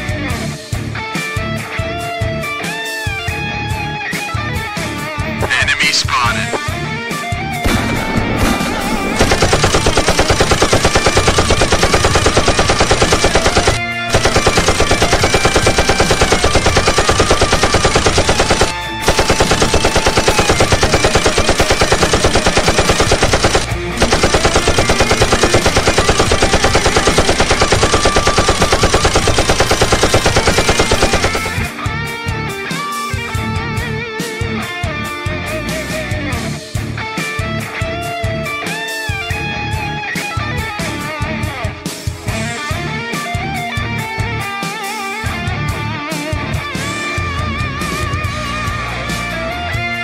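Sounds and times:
background music: 0:00.0 - 0:09.7
automatic rifle fire: 0:07.7 - 0:31.7.

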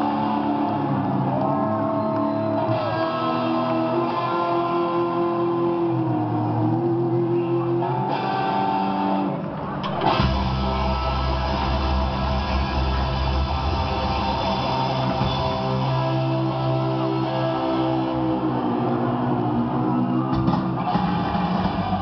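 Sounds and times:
punk rock band playing: 0:00.0 - 0:22.0.

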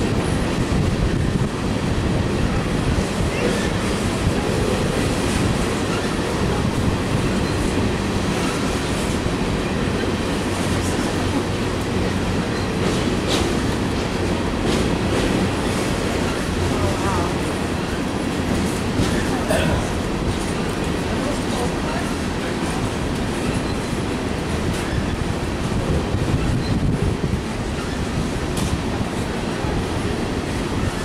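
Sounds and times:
freight train wheels rumbling on rail: 0:00.0 - 0:31.0.

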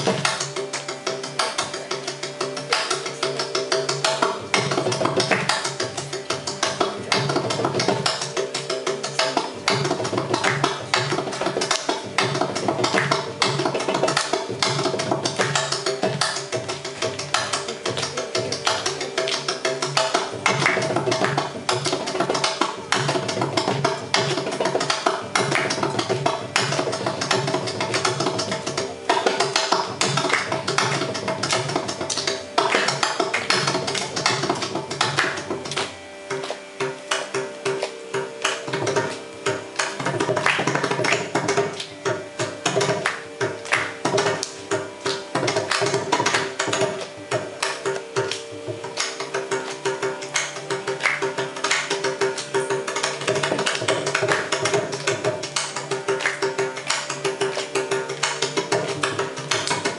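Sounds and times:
mridangam drum strokes: 0:00.0 - 0:59.9.

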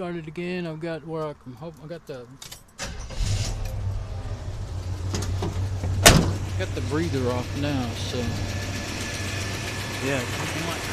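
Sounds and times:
car engine idling: 0:02.8 - 0:10.9.

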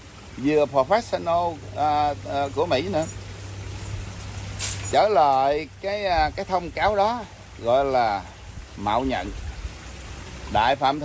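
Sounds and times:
creek running over rocks: 0:00.0 - 0:11.0.

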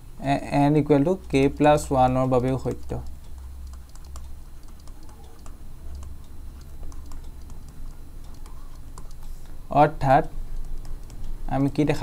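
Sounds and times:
low steady hum: 0:00.0 - 0:12.0
stylus writing on a tablet: 0:01.2 - 0:09.5, 0:10.5 - 0:12.0.

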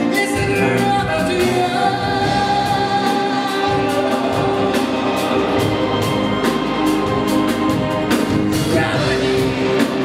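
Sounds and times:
drums and cymbals: 0:00.0 - 0:10.0
pop-rock band playing: 0:00.0 - 0:10.0
choir-like vocals: 0:00.7 - 0:10.0.

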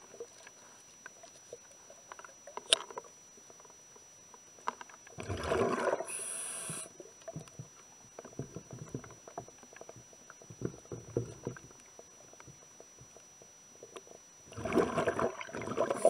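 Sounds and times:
faint clicks and ticks: 0:00.0 - 0:05.2, 0:06.7 - 0:14.4
exhaled bubbles underwater: 0:05.2 - 0:07.5, 0:14.4 - 0:16.0
regulator breath hiss: 0:06.1 - 0:07.0.

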